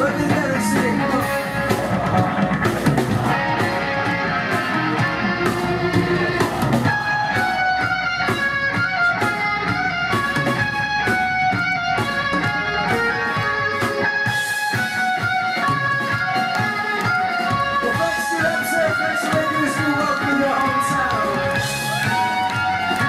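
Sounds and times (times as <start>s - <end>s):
live rock band playing: 0.0s - 23.0s
ringing electric guitar melody: 0.0s - 23.0s.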